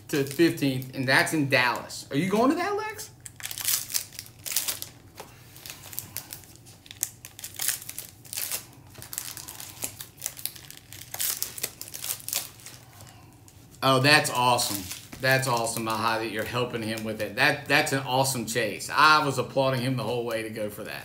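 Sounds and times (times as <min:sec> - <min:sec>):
foil wrappers crinkling: 0:00.0 - 0:17.9.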